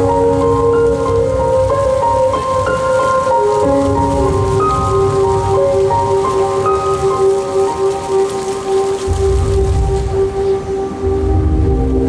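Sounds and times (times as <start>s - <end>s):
fountain water spraying: 0.0s - 12.0s
slow melody over loudspeakers: 0.0s - 12.0s.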